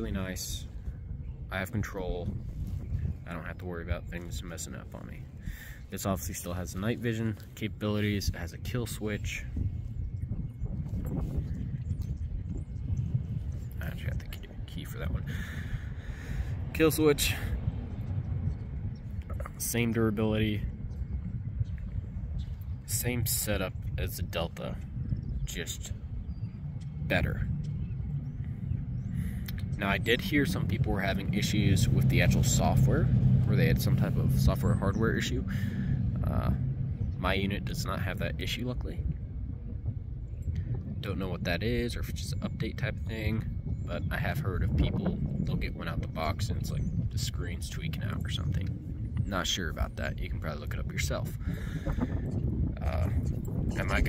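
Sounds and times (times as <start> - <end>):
low uneven rumble: 0.0 - 54.0
wind buffeting microphone: 0.0 - 54.0.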